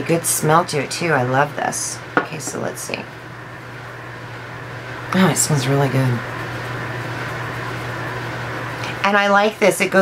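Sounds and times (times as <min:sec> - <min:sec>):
room noise hum and hiss: 0:00.0 - 0:10.0.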